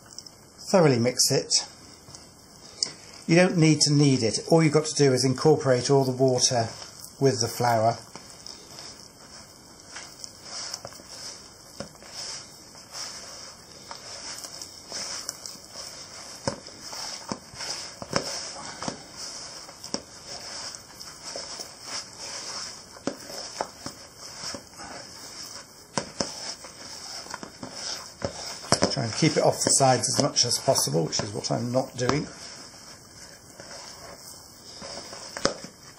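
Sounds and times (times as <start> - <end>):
hand mixing sticky dough: 0.0 - 35.9.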